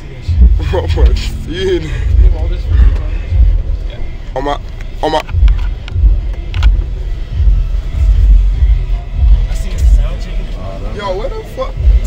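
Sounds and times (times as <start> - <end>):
van cabin rumble: 0.0 - 12.0.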